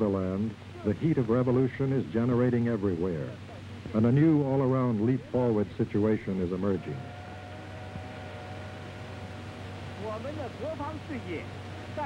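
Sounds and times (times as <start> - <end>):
film soundtrack hiss: 0.0 - 12.0
low hum: 0.0 - 12.0.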